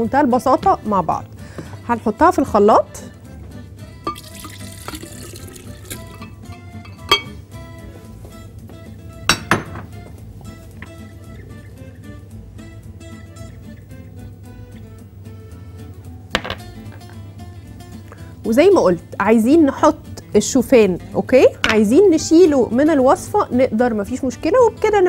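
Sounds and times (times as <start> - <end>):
soft background music: 0.0 - 25.0
liquid pouring into blender jar: 4.1 - 6.2
dish clinking against jar: 5.9 - 7.4.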